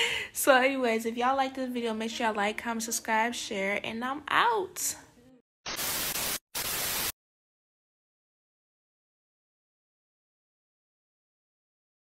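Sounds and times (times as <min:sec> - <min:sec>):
tv static hiss: 0:05.7 - 0:07.1.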